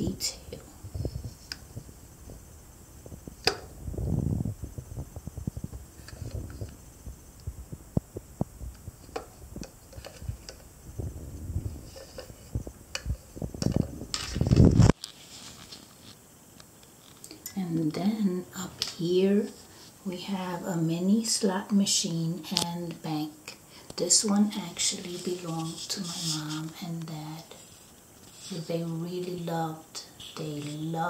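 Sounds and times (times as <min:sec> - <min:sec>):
microphone handling rumble: 0:00.0 - 0:15.0.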